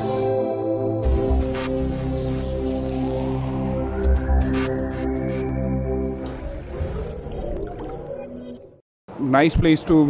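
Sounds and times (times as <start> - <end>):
electronic intro music: 0.0 - 8.8.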